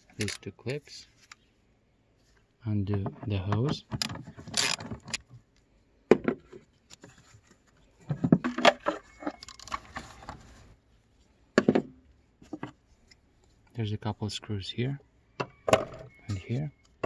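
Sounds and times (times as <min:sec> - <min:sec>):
plastic scraping and knocks: 0:02.9 - 0:05.2, 0:08.0 - 0:10.5
plastic clatter: 0:08.0 - 0:10.4.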